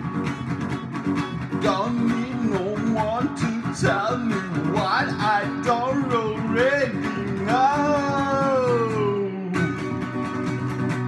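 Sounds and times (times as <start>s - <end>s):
guitar chords: 0.0s - 11.0s
man singing: 1.6s - 10.0s.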